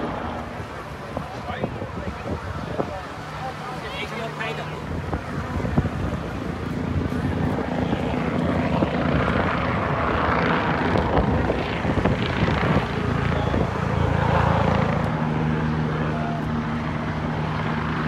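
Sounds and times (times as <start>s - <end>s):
helicopter engine hum: 0.0s - 18.0s
helicopter rotor beating: 0.0s - 18.0s.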